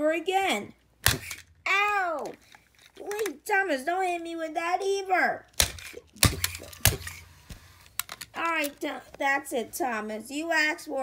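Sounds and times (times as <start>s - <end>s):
plastic toy train clacks: 2.2s - 3.4s, 7.9s - 8.9s.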